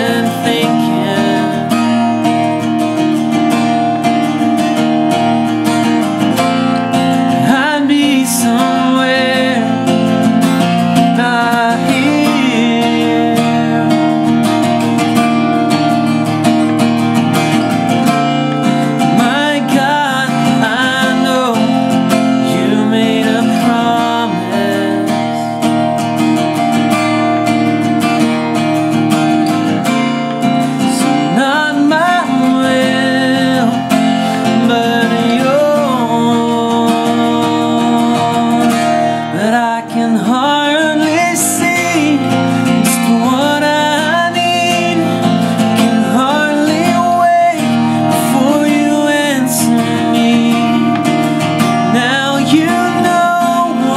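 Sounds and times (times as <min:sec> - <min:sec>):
man singing: 0:00.0 - 0:26.4, 0:29.4 - 0:53.9
acoustic guitar strumming: 0:00.0 - 0:53.9.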